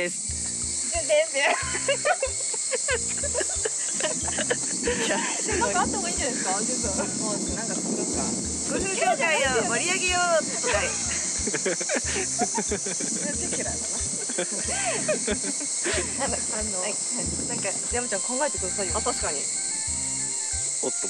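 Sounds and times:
high-pitched insect buzz: 0.0s - 21.0s
women talking and laughing: 0.9s - 7.8s, 8.6s - 19.5s.

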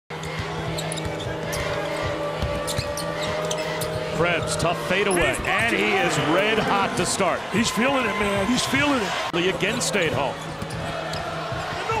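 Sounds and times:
arena crowd hum: 0.1s - 12.0s.

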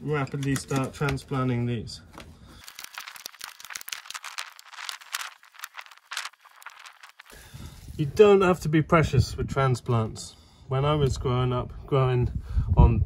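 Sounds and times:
crackling of plastic pot trays: 0.0s - 8.1s.

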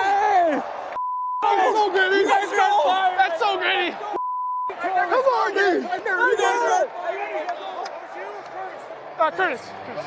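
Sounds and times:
men's excited voices: 0.0s - 10.0s
censor bleep: 1.0s - 1.4s, 4.2s - 4.7s.

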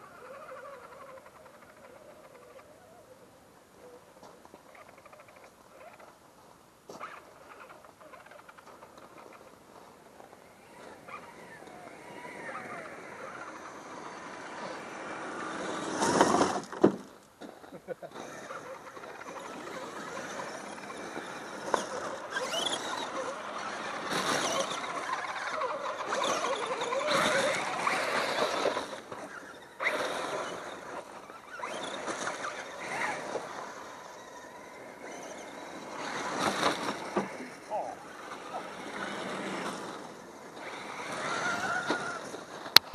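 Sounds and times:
toy trucks driving over gravel: 0.0s - 3.2s, 3.8s - 42.9s
people talking: 37.3s - 38.8s.

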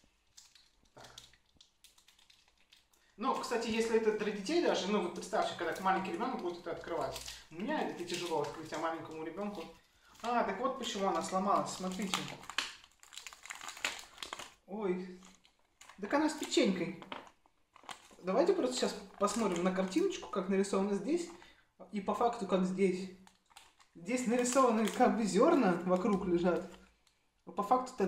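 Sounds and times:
wrapper crinkling: 0.0s - 27.3s.

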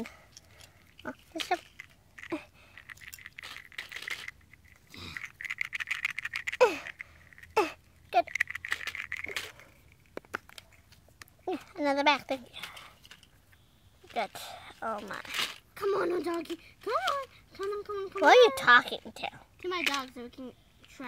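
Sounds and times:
plastic toy pieces clicking: 0.3s - 11.3s, 19.6s - 20.2s.

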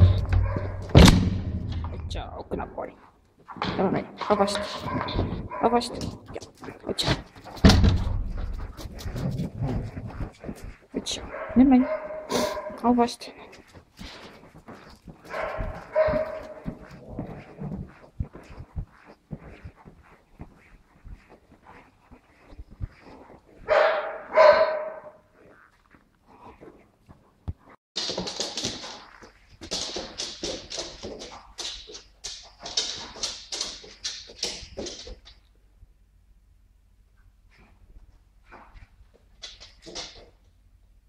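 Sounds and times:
footsteps on hard floor: 0.0s - 1.9s, 3.4s - 35.1s
dog sniffing hard: 8.4s - 12.8s
dog drawn-out call: 23.0s - 25.8s.

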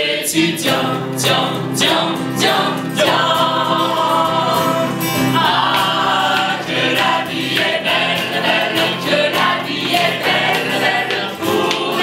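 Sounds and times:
mixed choir singing: 0.0s - 12.0s.

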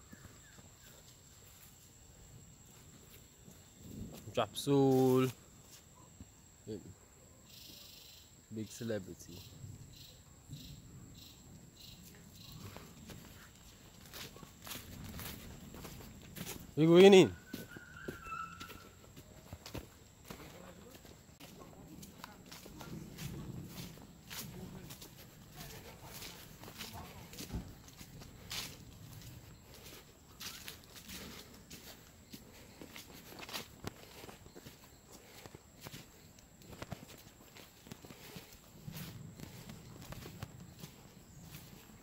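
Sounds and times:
footsteps on dirt track: 0.0s - 2.0s, 10.6s - 42.0s.

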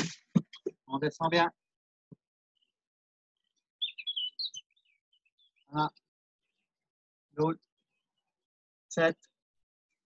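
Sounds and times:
small songbird chirping: 3.4s - 6.8s.

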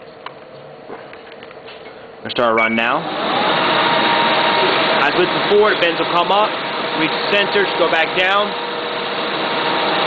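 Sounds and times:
paper collator motors whirring: 3.0s - 10.0s.

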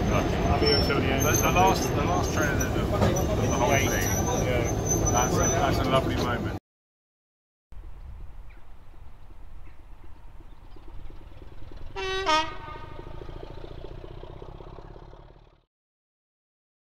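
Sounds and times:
diesel locomotive idling: 0.0s - 6.6s, 8.9s - 15.6s
two-tone horn toot: 11.9s - 13.2s.

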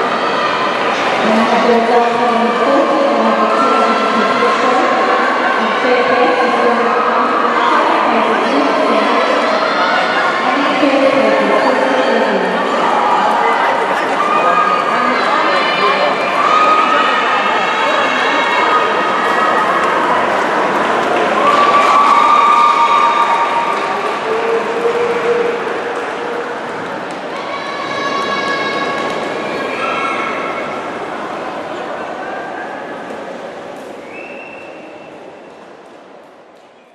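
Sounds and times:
spectators cheering and shouting: 0.0s - 35.4s.

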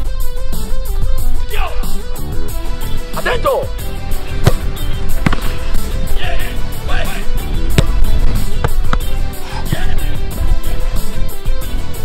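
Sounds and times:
guitar music: 0.3s - 12.0s
football thuds: 4.2s - 6.0s, 7.6s - 10.1s.

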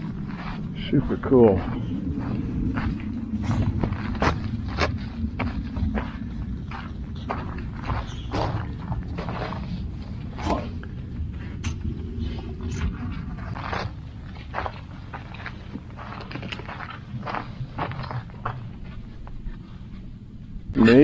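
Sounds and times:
footsteps on gravel: 0.0s - 10.8s, 11.4s - 19.4s
wind rumble on microphone: 0.0s - 21.0s.

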